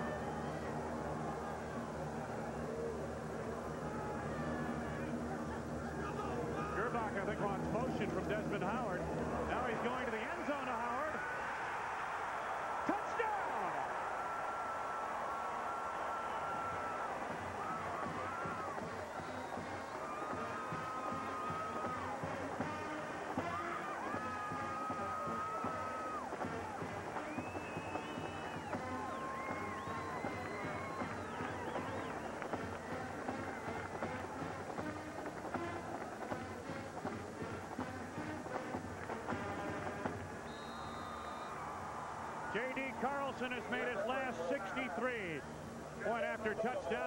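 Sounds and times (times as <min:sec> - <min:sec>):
stadium crowd cheering: 0:00.0 - 0:47.0
marching band brass notes: 0:16.0 - 0:41.6.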